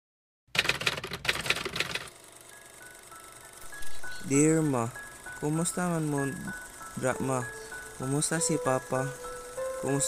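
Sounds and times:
rapid sharp mechanical clicks: 0:00.5 - 0:02.6.

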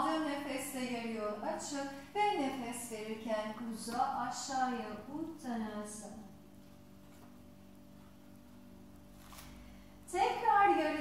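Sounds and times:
woman speaking: 0:00.0 - 0:06.3, 0:10.1 - 0:11.0
faint steady hum: 0:00.0 - 0:11.0.

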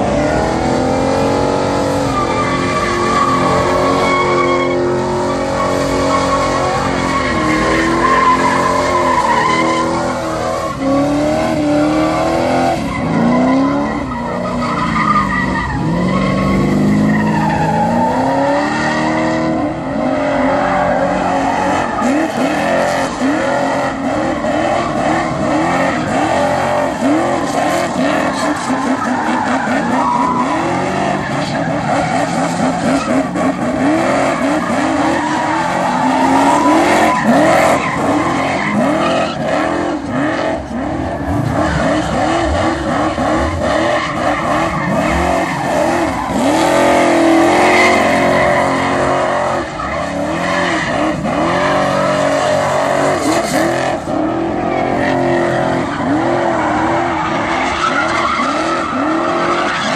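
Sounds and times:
car engine revving: 0:00.0 - 0:59.9
tyres screeching on asphalt: 0:00.0 - 0:59.9.

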